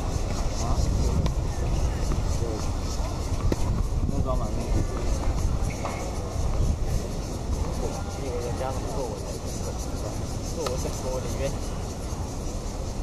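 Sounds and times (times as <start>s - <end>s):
distant voices talking: 0.0s - 13.0s.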